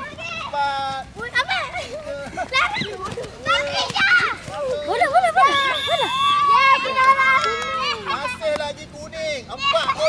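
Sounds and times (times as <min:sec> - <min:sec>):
girls shouting and calling out: 0:01.2 - 0:08.4.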